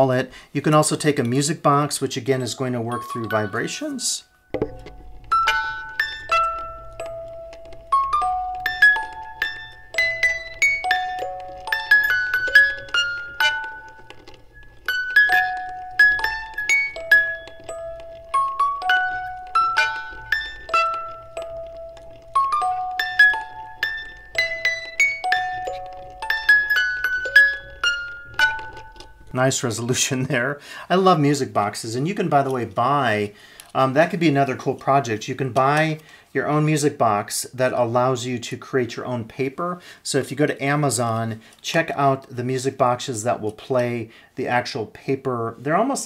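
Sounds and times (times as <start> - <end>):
music box tune: 2.4 - 29.5.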